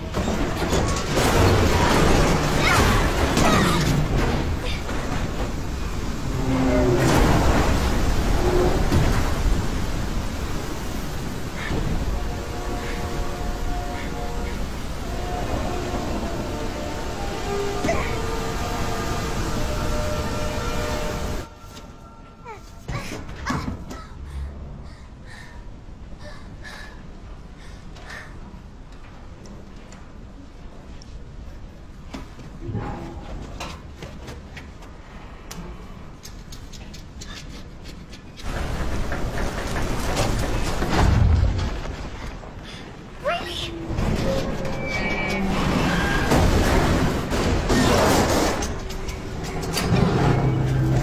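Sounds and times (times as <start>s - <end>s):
waterfall roaring: 1.1s - 21.5s, 43.0s - 51.0s.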